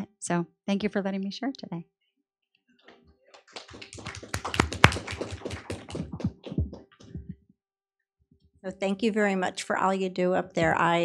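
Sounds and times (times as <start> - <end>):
small group applauding: 3.3 - 7.3.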